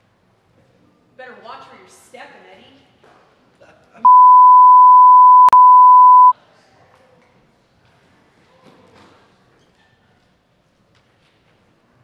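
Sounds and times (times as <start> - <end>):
high censor bleep: 4.1 - 6.3.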